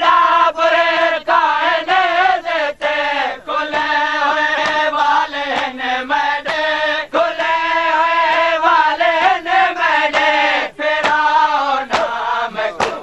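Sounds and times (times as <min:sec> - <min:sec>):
voices chanting a lament in unison: 0:00.0 - 0:13.0.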